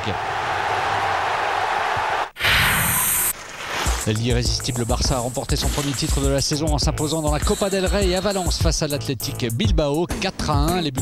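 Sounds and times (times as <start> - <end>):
stadium crowd cheering: 0.0 - 2.4.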